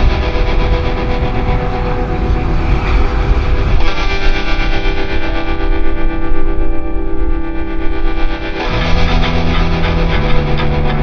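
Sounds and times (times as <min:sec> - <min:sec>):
rock music with distorted guitar: 0:00.0 - 0:11.0.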